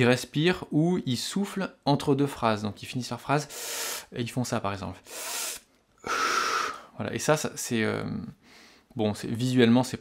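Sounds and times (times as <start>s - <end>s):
sharp intake of breath: 3.5s - 4.1s, 5.0s - 7.0s
puff of air blown out: 5.1s - 6.9s.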